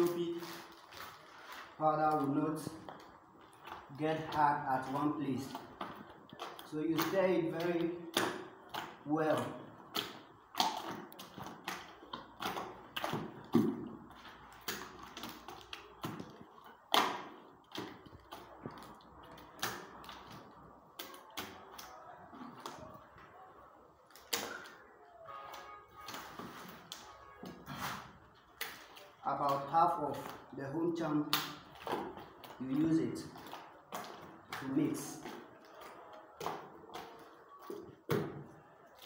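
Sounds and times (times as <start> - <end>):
hand stirring thick mix in bucket: 0.0 - 39.0.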